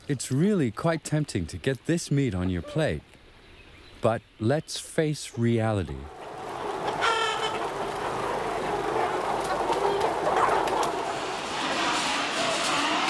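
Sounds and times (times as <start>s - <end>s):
hens clucking: 5.4s - 12.2s
loud single hen call: 6.8s - 7.6s.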